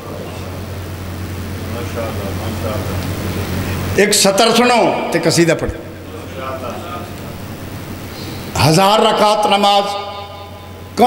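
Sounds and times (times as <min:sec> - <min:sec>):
low hum: 0:00.0 - 0:11.0
man speaking loudly: 0:04.0 - 0:07.1, 0:08.6 - 0:11.0
faint voices murmuring: 0:05.6 - 0:08.5.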